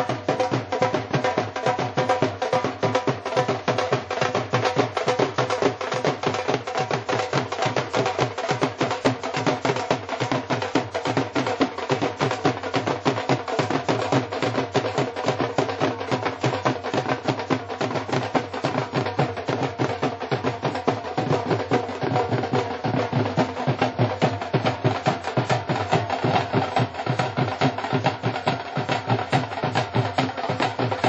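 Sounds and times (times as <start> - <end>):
fast even drumming: 0.0 - 31.0.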